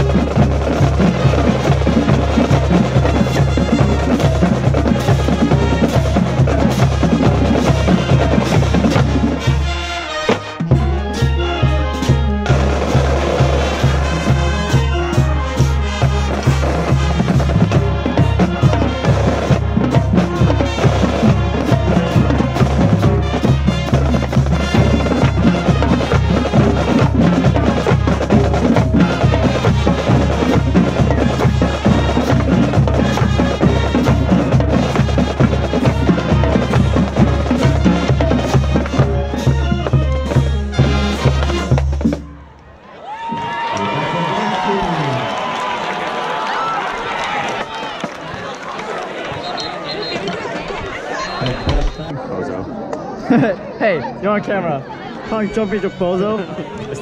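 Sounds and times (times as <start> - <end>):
cymbals: 0.0 - 42.3
snare drums: 0.0 - 42.4
bass drums: 0.0 - 42.5
marching band playing: 0.0 - 52.2, 54.9 - 57.0.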